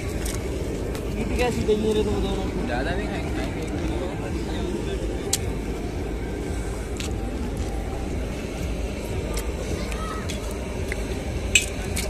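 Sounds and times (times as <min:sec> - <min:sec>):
people talking indistinctly: 0:00.0 - 0:12.0
steady low rumble: 0:00.0 - 0:12.0.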